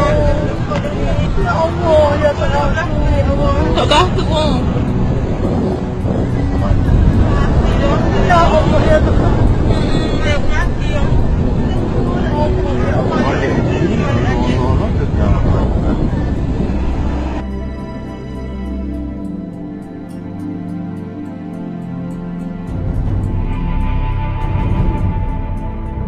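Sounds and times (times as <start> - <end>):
loud low rumble: 0.0 - 19.5, 22.2 - 26.0.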